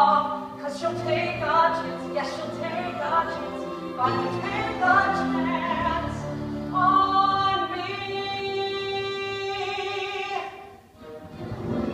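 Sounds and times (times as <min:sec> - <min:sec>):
musical accompaniment: 0:00.0 - 0:11.9.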